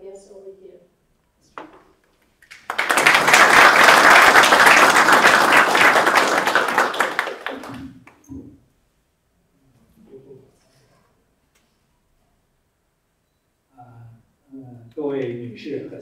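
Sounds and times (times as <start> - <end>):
audience applauding: 2.4 - 8.2.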